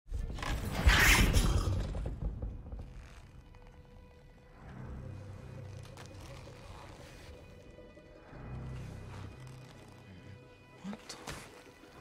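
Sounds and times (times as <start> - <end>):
low film score: 0.1 - 12.0.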